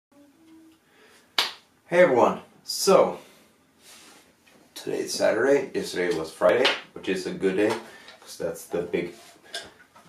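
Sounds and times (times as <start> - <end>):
finger snap: 1.4 - 1.6.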